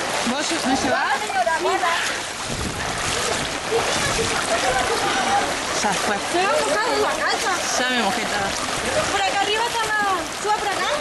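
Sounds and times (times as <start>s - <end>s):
water sloshing around wading legs: 0.0s - 11.0s.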